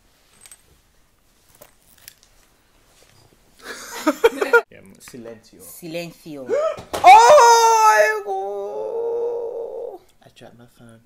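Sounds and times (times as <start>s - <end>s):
faint clicks and rustles: 0.0s - 3.6s
man laughing: 3.6s - 4.6s.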